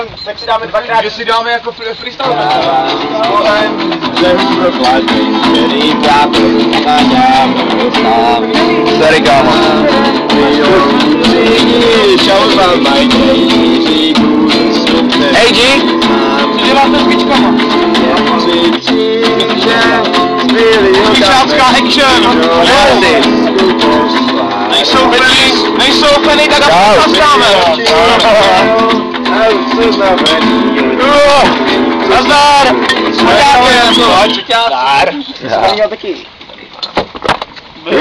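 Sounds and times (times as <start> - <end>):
acoustic guitar strummed: 0.0 - 35.0
voices singing or calling: 0.0 - 35.9, 37.8 - 38.0.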